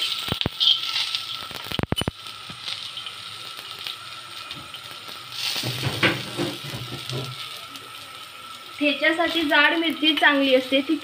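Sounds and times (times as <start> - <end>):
chillies sizzling in oil: 0.0 - 11.0.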